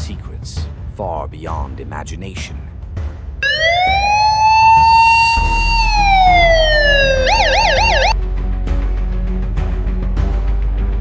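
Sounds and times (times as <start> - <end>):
siren wailing: 3.4 - 8.2.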